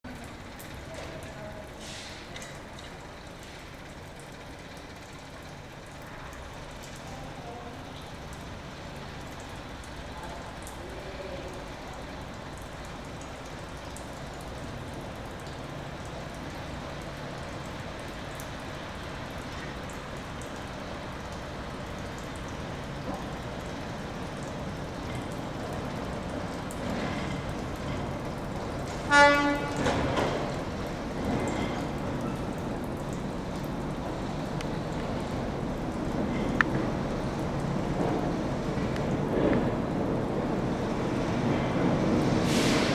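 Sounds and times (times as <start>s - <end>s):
locomotive engine rumbling: 0.0s - 42.9s.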